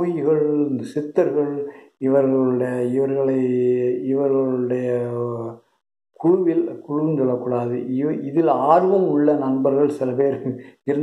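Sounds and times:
man chanting: 0:00.0 - 0:05.6, 0:06.2 - 0:11.0.

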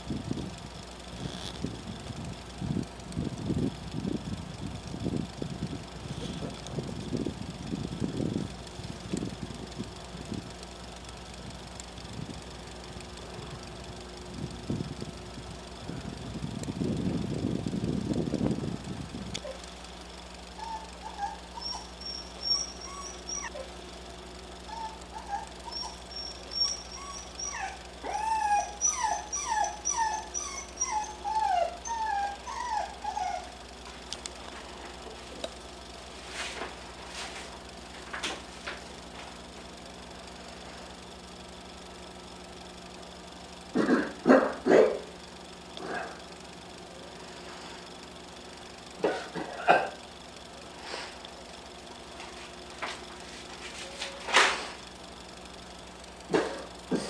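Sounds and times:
wavering high cries: 0:20.6 - 0:23.8, 0:24.6 - 0:33.6.

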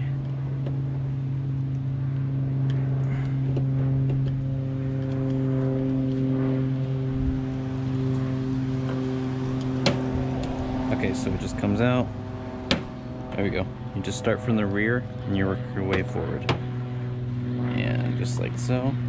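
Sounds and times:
low mechanical hum: 0:00.0 - 0:19.0.

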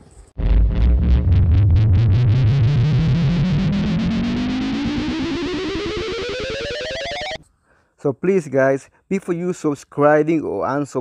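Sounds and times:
electronic pulsing riser: 0:00.4 - 0:07.4.

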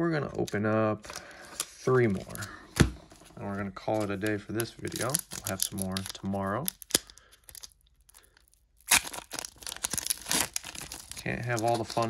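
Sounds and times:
foil crinkling: 0:04.0 - 0:12.0
foil wrapper ripping: 0:04.9 - 0:12.0.

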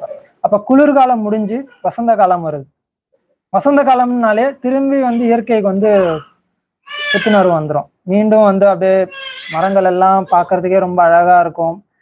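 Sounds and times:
man speaking: 0:00.0 - 0:02.7, 0:03.5 - 0:06.4, 0:07.0 - 0:11.9.

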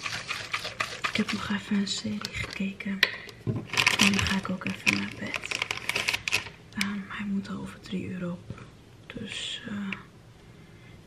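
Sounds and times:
woman whispering: 0:09.1 - 0:10.1.

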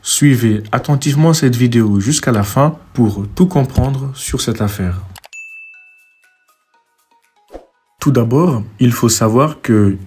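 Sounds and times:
bright bell-like ding: 0:05.3 - 0:06.8.

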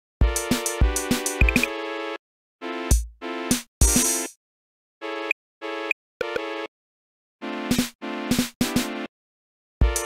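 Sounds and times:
synthesizer chord beeps: 0:01.4 - 0:01.7.

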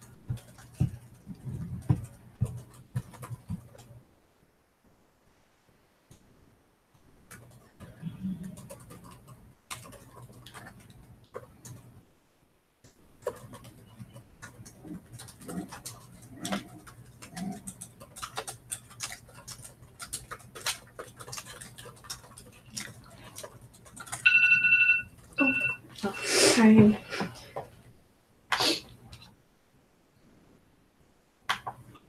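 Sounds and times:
laptop keyboard typing: 0:00.0 - 0:04.0, 0:07.1 - 0:12.0, 0:12.9 - 0:26.2, 0:31.5 - 0:32.0
phone timer beeping: 0:24.2 - 0:26.2.

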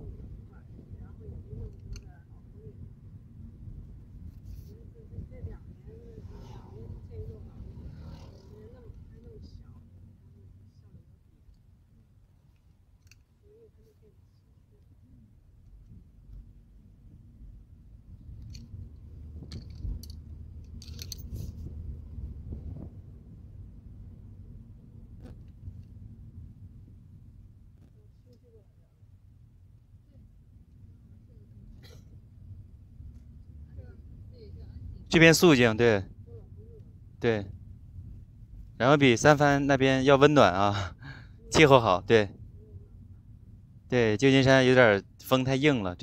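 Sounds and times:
car rumble inside cabin: 0:00.0 - 0:12.4, 0:14.9 - 0:40.7
clicks and rattles: 0:19.4 - 0:21.5.

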